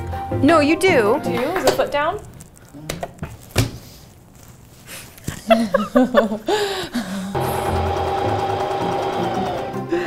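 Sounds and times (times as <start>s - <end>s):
sewing machine running: 7.4s - 10.0s.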